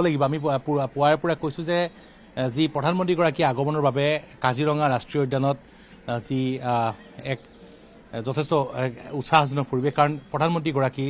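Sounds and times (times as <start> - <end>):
man speaking: 0.0 - 7.5, 8.1 - 11.0.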